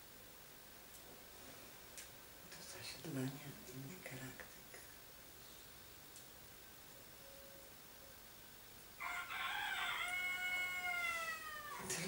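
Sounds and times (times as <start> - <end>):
rooster crowing: 9.0 - 12.0.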